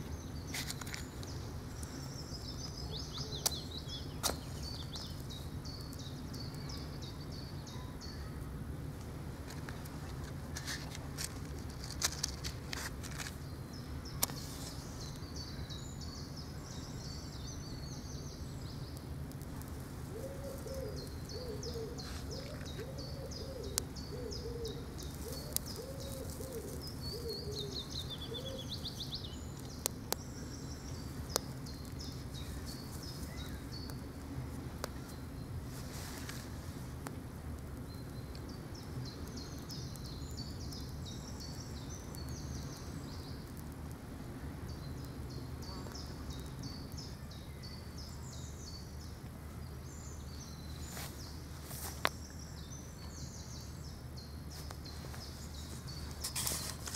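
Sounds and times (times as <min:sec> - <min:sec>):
low outdoor rumble: 0:00.0 - 0:56.9
songbirds singing: 0:00.0 - 0:56.9
bird hooting: 0:20.1 - 0:28.8.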